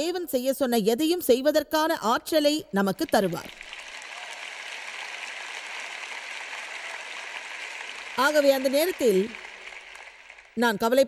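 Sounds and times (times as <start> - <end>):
audience applauding: 3.0 - 11.0.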